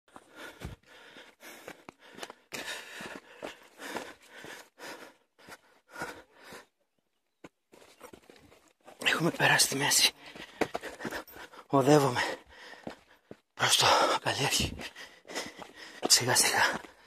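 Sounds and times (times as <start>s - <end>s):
hard breathing: 0.1s - 6.9s, 8.5s - 17.0s
footsteps on rocky trail: 0.1s - 17.0s.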